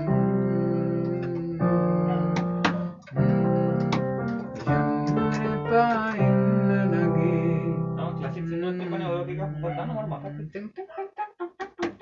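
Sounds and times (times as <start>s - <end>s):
keyboard chords: 0.0s - 10.3s.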